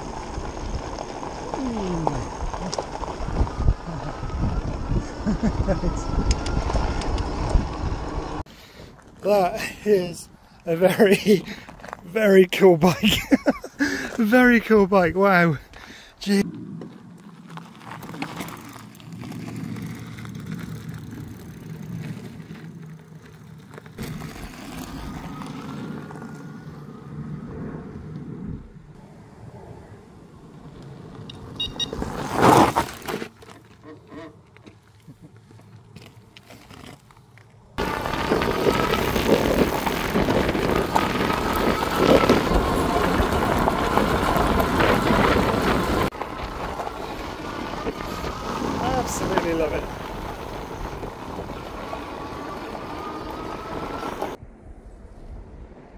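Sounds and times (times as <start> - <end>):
bike passing on gravel: 0.0 - 54.4
wind and tyre noise: 0.0 - 55.9
electric motor whine: 1.1 - 8.4, 37.8 - 54.4.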